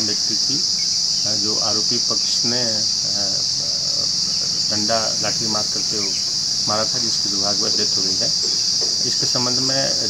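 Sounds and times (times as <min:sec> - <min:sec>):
man speaking: 0:00.0 - 0:00.7, 0:01.3 - 0:10.0
high-pitched insect chorus: 0:00.0 - 0:10.0.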